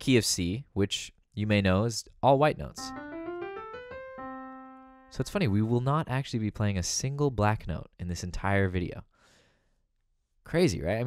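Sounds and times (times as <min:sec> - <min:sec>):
piano playing scale and chord: 0:02.8 - 0:05.7.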